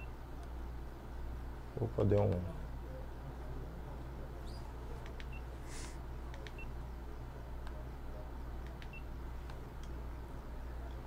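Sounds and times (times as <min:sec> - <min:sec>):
steady low hum: 0:00.0 - 0:11.0
computer mouse clicks: 0:05.0 - 0:05.4, 0:06.3 - 0:06.6.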